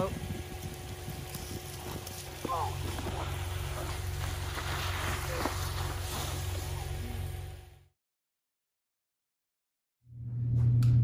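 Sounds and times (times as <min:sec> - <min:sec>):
water spraying from a hose: 0:00.0 - 0:07.3
steady low hum: 0:00.0 - 0:07.9, 0:10.1 - 0:11.0.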